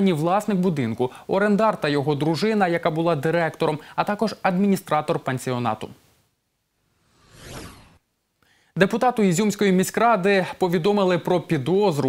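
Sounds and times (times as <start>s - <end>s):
whoosh: 6.8s - 8.0s.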